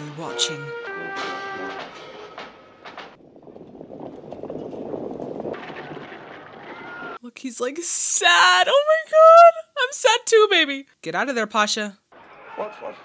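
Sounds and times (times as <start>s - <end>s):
brass marching band with drum: 0.3s - 3.2s
massed hoofbeats rumbling: 0.7s - 7.2s.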